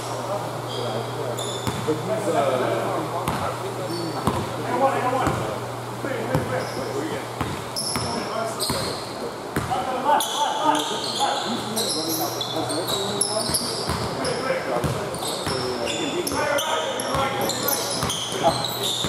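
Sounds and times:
sneakers squeaking: 0.0s - 2.0s, 3.2s - 4.6s, 6.2s - 19.0s.

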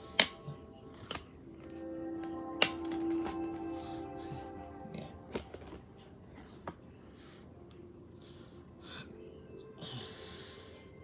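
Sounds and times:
steady held musical tone: 0.0s - 11.0s.

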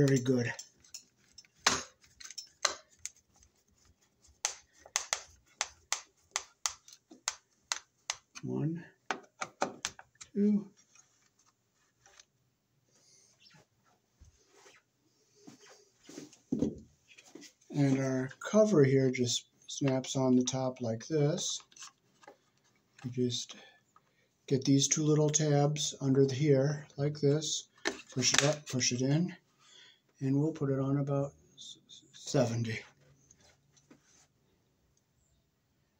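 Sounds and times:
hands handling things: 0.0s - 8.5s.

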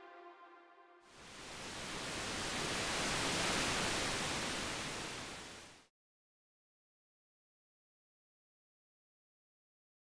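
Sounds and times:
white noise swell: 1.1s - 5.9s.

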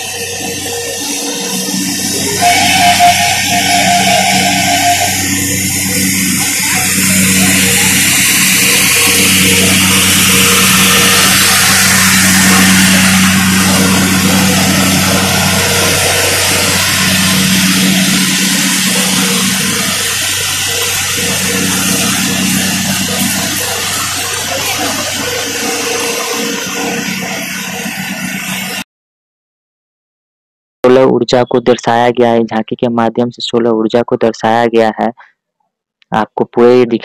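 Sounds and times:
loud rushing noise: 0.0s - 28.8s
low engine hum: 0.0s - 28.8s.

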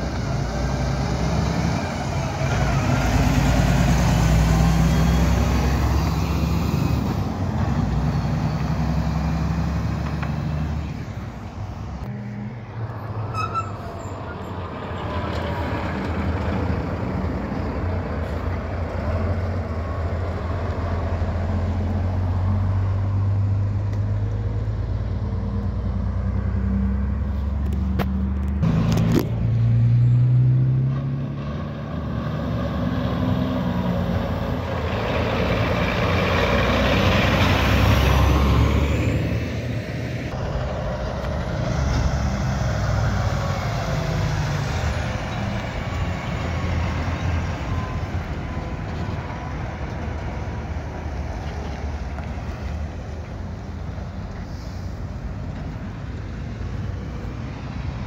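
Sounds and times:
diesel trucks driving past: 0.0s - 58.0s
tyre and road noise: 0.0s - 58.0s.

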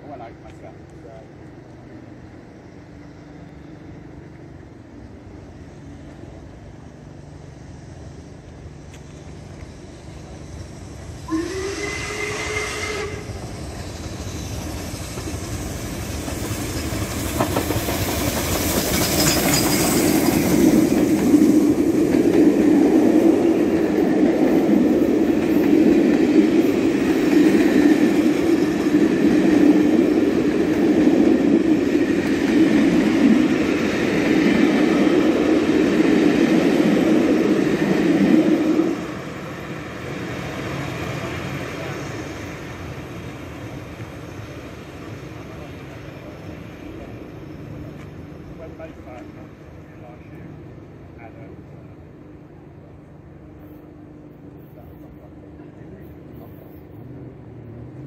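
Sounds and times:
steam train passing at speed: 0.0s - 58.0s
wheels rumbling on rail: 0.0s - 58.0s.

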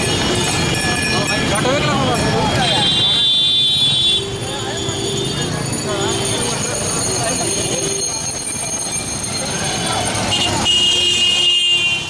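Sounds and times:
passers-by talking: 0.0s - 11.4s
crowd noise: 0.0s - 12.0s
traffic din: 0.0s - 12.0s.

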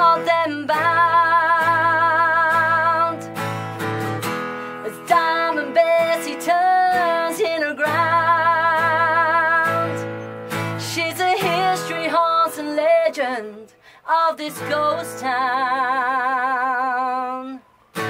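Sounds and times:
woman singing with vibrato: 0.0s - 17.7s
acoustic guitars strummed: 0.0s - 18.0s.

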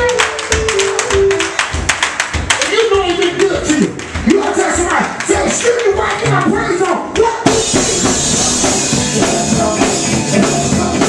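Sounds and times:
congregation clapping in rhythm: 0.0s - 10.8s
gospel band playing: 0.0s - 11.0s.

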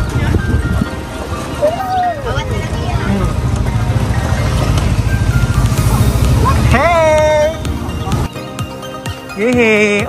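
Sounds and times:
motorbike engine rumble: 0.0s - 8.4s
music: 0.0s - 10.0s
people's voices: 0.0s - 10.0s
wind: 0.0s - 10.0s.

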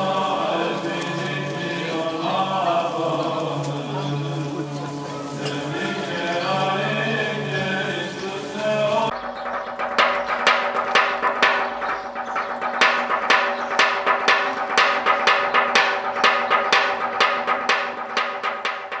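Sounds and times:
sharp wooden strikes: 8.6s - 19.0s.

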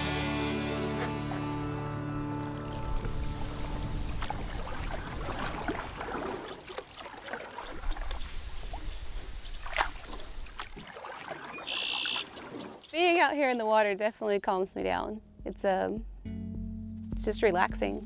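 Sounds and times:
background music: 0.0s - 4.1s, 14.5s - 18.0s
paddle splashing water: 2.4s - 13.3s
hull brushing through grass: 2.6s - 6.2s
short high bird call: 11.6s - 12.3s.

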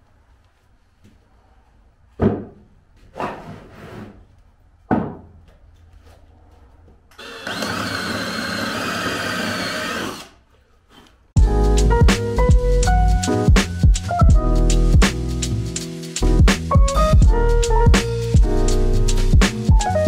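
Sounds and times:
handheld power tool whining: 7.2s - 10.4s
music with a beat: 11.4s - 20.0s.

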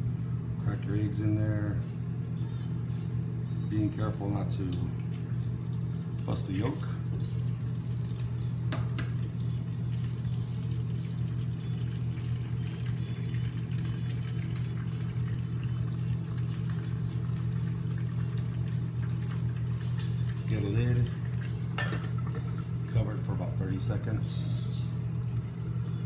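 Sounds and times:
microwave oven humming: 0.0s - 26.0s
eggshell cracking against pan: 8.6s - 9.2s.

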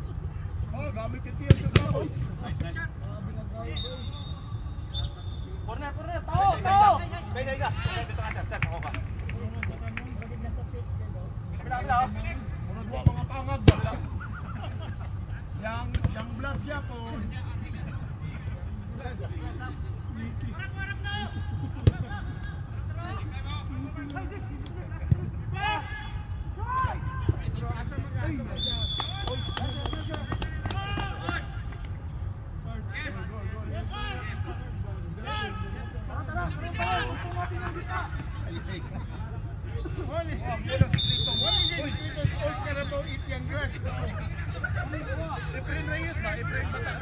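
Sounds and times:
whistle blast: 3.7s - 5.6s, 28.6s - 30.5s, 41.0s - 42.2s.

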